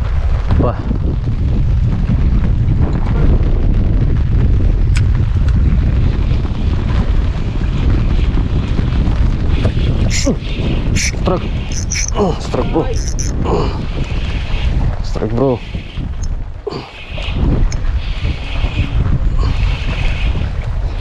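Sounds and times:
wind buffeting microphone: 0.0 - 21.0.

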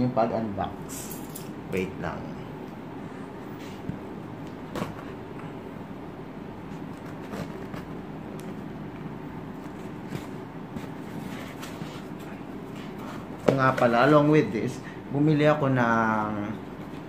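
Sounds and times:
low background hum: 0.0 - 17.0.

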